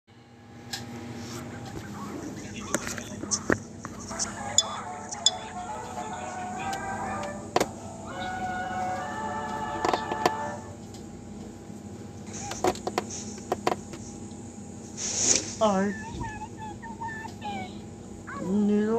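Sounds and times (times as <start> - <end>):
steady low hum: 0.1 - 18.9
cartoon music with voice: 15.8 - 17.8.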